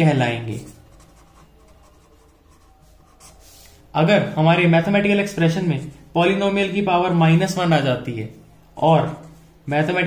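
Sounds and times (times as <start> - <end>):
pen scratching on paper: 0.4 - 3.8.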